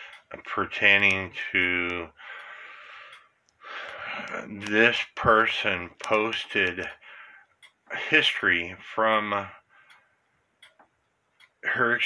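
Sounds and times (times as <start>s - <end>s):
man breathing: 0.0s - 0.3s, 2.2s - 4.4s, 7.0s - 7.6s, 9.6s - 10.2s.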